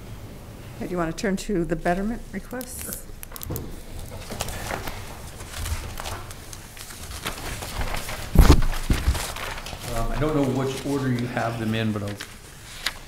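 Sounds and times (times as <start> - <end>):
paper rustling: 2.8 - 13.0.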